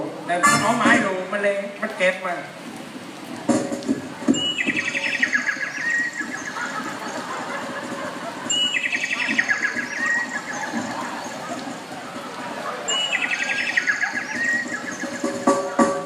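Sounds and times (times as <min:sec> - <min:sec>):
knocks: 0:03.5 - 0:04.8
high chirping bird call: 0:04.3 - 0:16.0.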